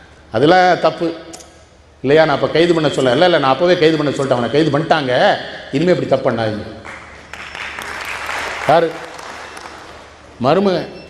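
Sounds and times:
audience applause: 6.9s - 10.2s.

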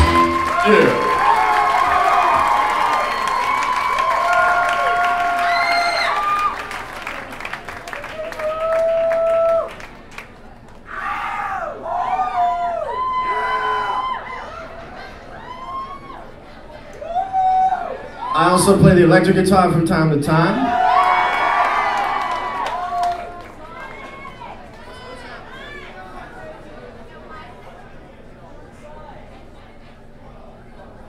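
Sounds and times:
crowd cheering and whooping: 0.0s - 9.9s, 10.9s - 18.6s, 20.6s - 26.1s.

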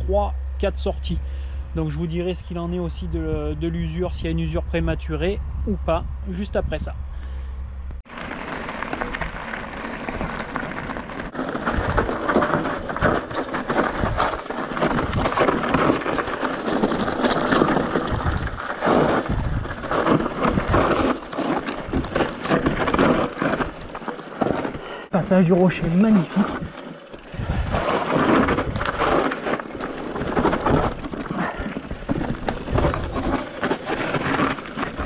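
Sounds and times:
wind rumbling on microphone: 0.0s - 24.8s, 26.4s - 35.0s
bike rattling over bumps: 8.0s - 35.0s
tyres crunching over stones: 8.0s - 35.0s.

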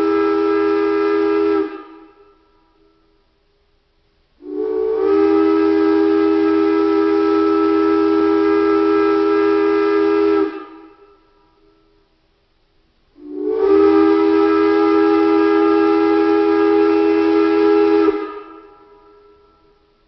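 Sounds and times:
steam locomotive whistle blasts: 0.0s - 3.2s, 4.4s - 12.1s, 13.2s - 20.0s.

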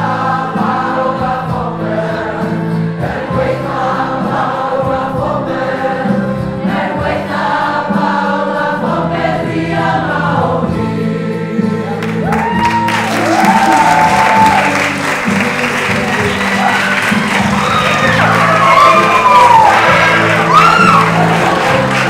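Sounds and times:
group singing in unison: 0.0s - 22.0s
crowd cheering and whooping: 12.0s - 22.0s
people clapping: 12.0s - 22.0s.

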